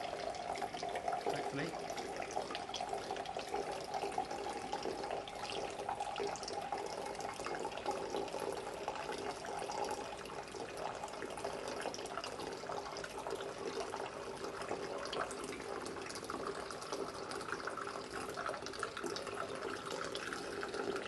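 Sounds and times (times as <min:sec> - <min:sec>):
water running with splashing: 0:00.0 - 0:21.0.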